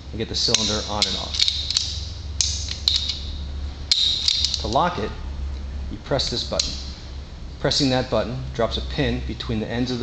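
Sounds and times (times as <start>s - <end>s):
sharp metal clicks: 0.4s - 4.9s, 6.5s - 7.0s.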